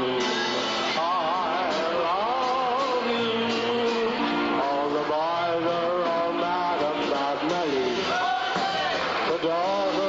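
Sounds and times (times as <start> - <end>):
big band orchestra playing: 0.0 - 10.0.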